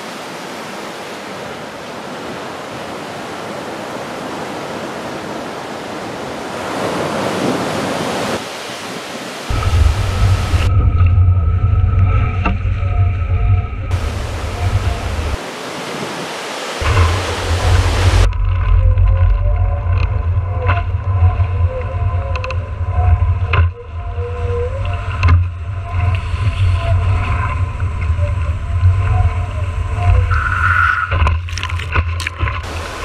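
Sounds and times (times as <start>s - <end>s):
water rushing past: 0.0s - 23.4s, 24.8s - 33.0s
wind buffeting microphone: 2.2s - 30.5s
faint wavering whine: 9.5s - 15.4s.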